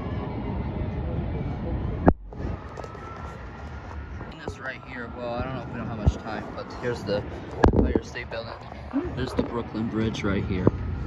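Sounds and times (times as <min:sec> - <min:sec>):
distant city noise: 0:00.0 - 0:11.0
wind: 0:00.0 - 0:11.0.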